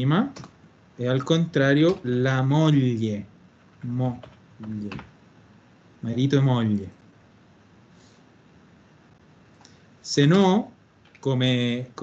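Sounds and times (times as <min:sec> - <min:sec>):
computer keyboard keystrokes: 0:00.4 - 0:00.6, 0:03.6 - 0:05.1.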